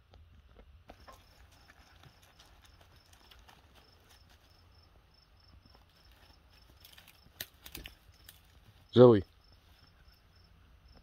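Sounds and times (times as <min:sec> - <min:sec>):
faint cricket chirps: 0:00.6 - 0:11.0.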